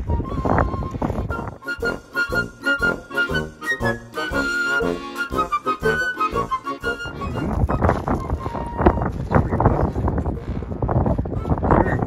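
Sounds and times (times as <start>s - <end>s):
wind rumbling on microphone: 0.0s - 2.0s, 7.0s - 12.0s.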